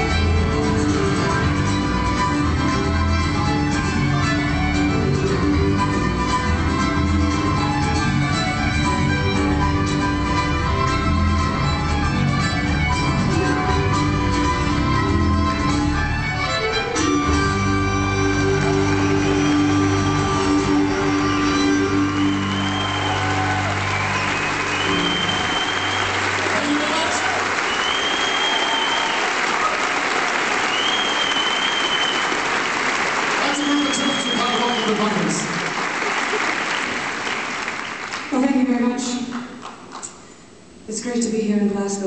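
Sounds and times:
folk band playing: 0:00.0 - 0:27.8
audience applauding and cheering: 0:17.1 - 0:38.5
whistles from audience: 0:18.8 - 0:29.9, 0:30.5 - 0:32.5, 0:33.4 - 0:35.3.

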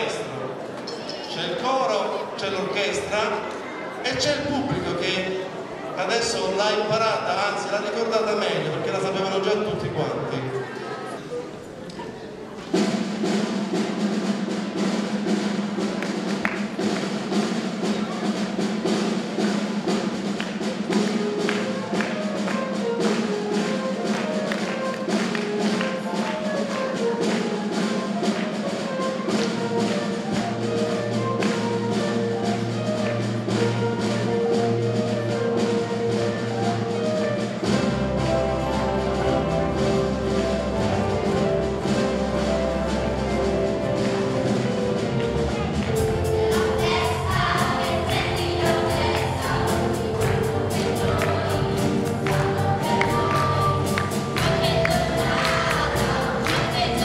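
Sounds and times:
school orchestra playing: 0:00.0 - 0:57.0.

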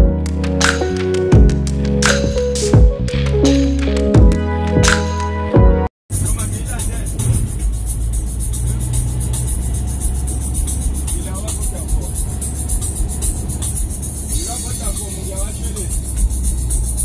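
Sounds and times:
minibus driving rumble: 0:06.1 - 0:17.0.

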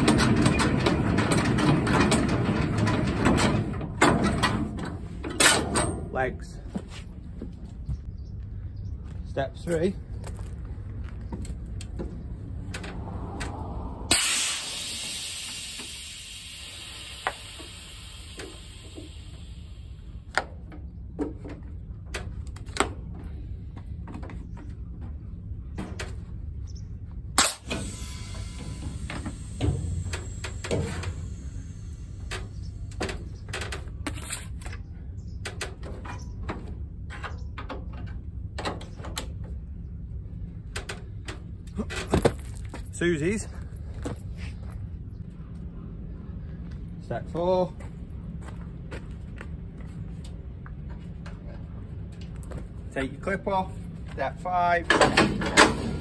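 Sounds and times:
low rumble: 0:10.0 - 0:35.4
compressed air hissing: 0:14.1 - 0:20.2
clicks and knocks of couplings: 0:32.2 - 0:39.6, 0:54.8 - 0:56.0.

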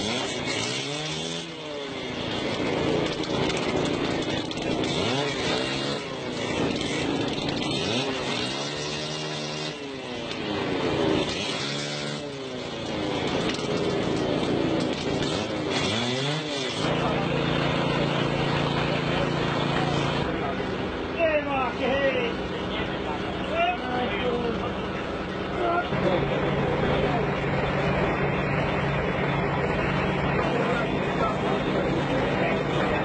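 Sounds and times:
small engine running: 0:00.0 - 0:33.0
people's voices: 0:16.8 - 0:33.0.

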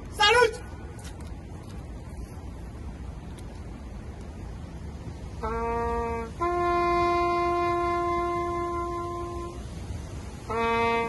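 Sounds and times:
solo brass horn call: 0:05.4 - 0:11.0.

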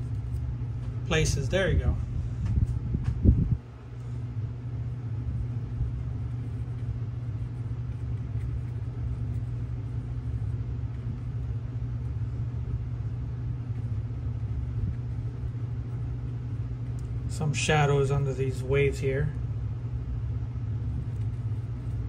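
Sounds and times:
low background hum: 0:00.0 - 0:22.0.

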